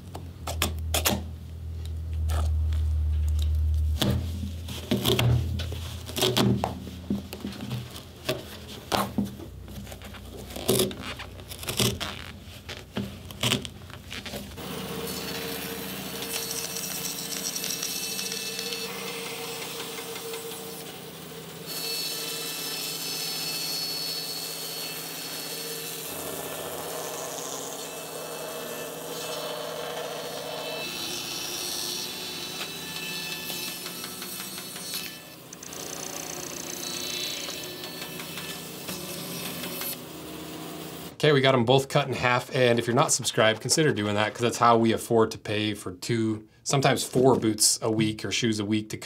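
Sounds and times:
band saw cutting rubber: 9.8 - 41.2.

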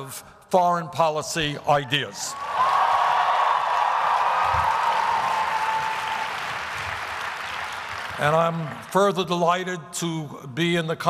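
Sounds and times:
large audience applauding: 2.3 - 9.1.

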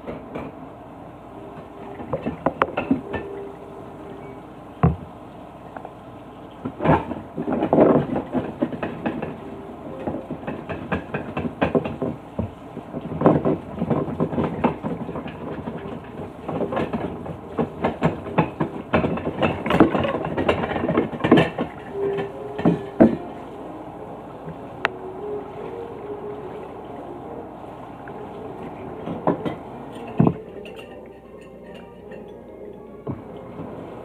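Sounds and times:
dishes clattering: 13.2 - 23.3, 29.0 - 33.5.

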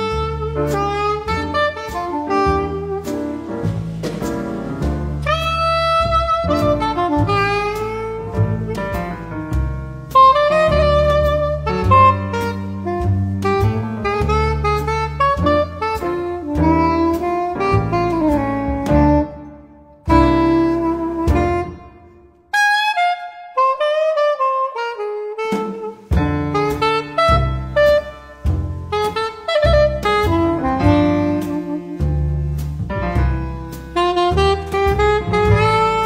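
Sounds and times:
saxophone melody: 0.0 - 3.5, 5.2 - 9.2, 10.1 - 32.2, 33.9 - 36.0
piano chords: 0.0 - 22.6, 25.6 - 36.0
bass line: 0.0 - 24.4, 25.4 - 36.0.

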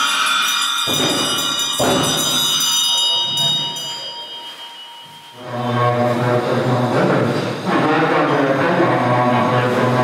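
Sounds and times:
percussion hit: 0.0 - 4.1
bells ringing: 0.0 - 9.1.

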